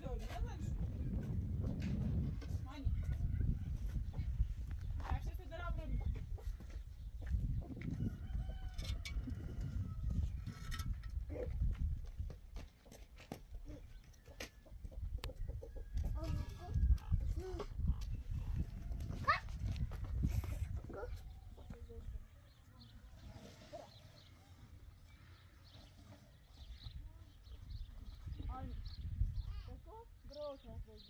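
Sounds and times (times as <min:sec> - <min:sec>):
chickens clucking: 0:13.9 - 0:19.2.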